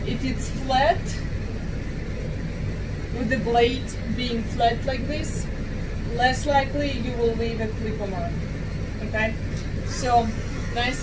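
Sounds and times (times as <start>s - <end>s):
electric pet clipper humming: 9.8s - 11.0s.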